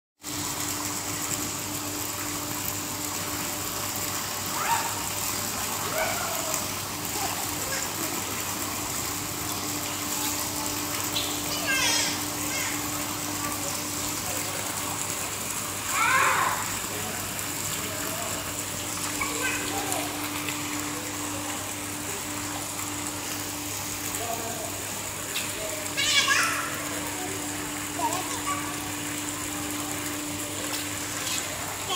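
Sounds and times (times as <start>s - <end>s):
rush of pool water: 0.2s - 31.9s
child calling: 11.4s - 12.9s, 15.9s - 16.7s, 19.2s - 20.2s, 26.0s - 26.9s.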